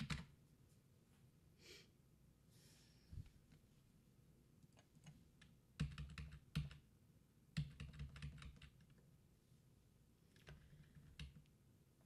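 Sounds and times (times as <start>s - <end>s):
computer keyboard typing: 0.0s - 0.4s, 4.6s - 6.9s, 7.5s - 9.0s, 10.3s - 11.6s.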